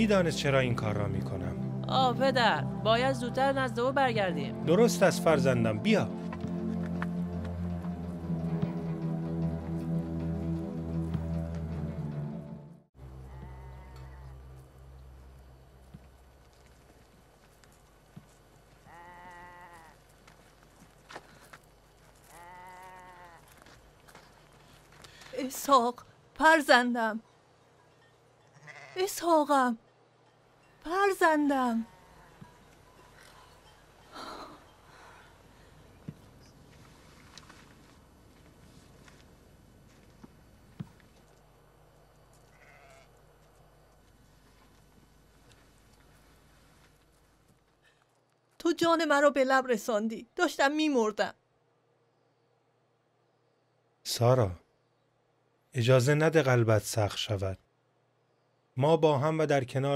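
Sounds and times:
sheep bleating: 13.2s - 14.4s, 18.8s - 20.1s, 22.2s - 23.6s, 28.5s - 29.2s, 31.8s - 32.6s, 42.4s - 43.2s.

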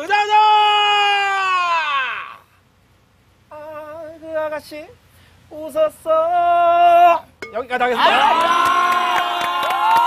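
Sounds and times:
man singing: 3.5s - 7.3s.

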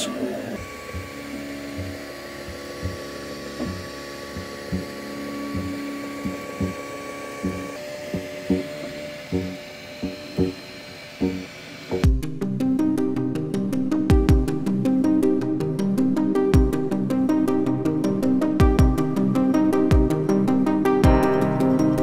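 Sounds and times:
stepper motors whining: 0.0s - 12.2s
music with steady beat: 0.6s - 10.2s, 12.0s - 22.0s.

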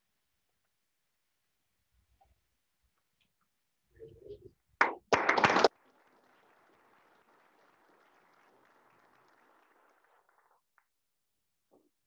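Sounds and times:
faint room noise: 0.0s - 12.0s
hands clapping: 4.8s - 11.0s.

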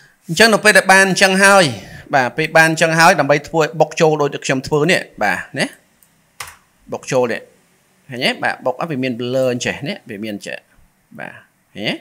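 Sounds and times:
person speaking: 0.0s - 12.0s.

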